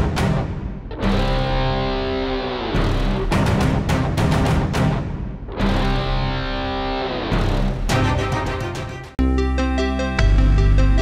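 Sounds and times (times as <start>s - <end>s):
tv theme music with beat: 0.0s - 11.0s.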